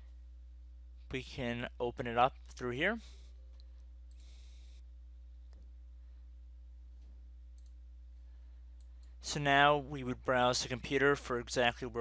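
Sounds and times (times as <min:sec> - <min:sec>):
low electrical hum: 0:00.0 - 0:12.0
computer mouse clicks: 0:07.5 - 0:07.8.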